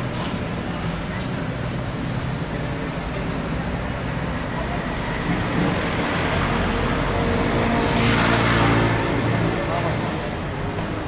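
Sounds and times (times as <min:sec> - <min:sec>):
city street traffic: 0:00.0 - 0:11.0
vehicle engine passing: 0:04.5 - 0:11.0.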